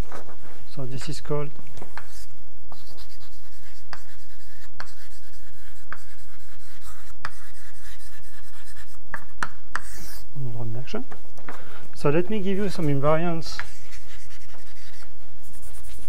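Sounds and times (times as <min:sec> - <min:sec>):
chalk tapping on board: 0:01.9 - 0:10.2, 0:13.4 - 0:15.1
chalk scratching on blackboard: 0:01.9 - 0:10.3, 0:12.7 - 0:16.0.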